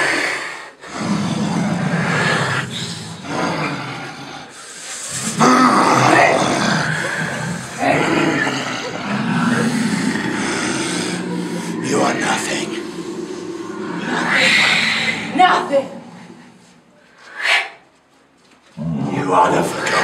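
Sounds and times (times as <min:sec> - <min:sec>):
rough dragon roaring: 0:00.8 - 0:04.5, 0:05.1 - 0:17.0.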